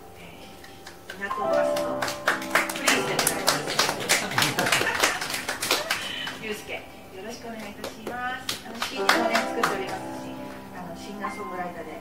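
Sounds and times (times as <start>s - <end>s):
grand piano notes: 0.0s - 12.0s
scattered handclaps: 0.6s - 6.6s, 7.6s - 10.6s.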